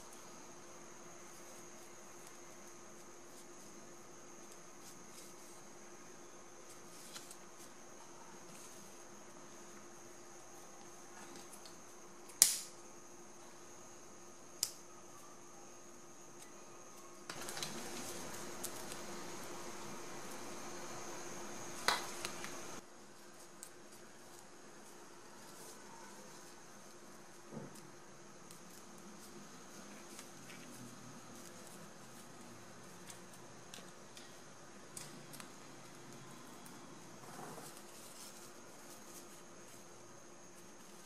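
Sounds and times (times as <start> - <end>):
faint steady hum: 0.0 - 41.0
steady hissing noise: 0.0 - 41.0.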